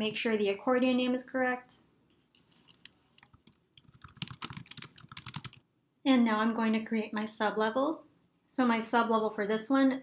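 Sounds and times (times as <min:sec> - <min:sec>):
typing on computer keyboard: 0:02.7 - 0:05.6.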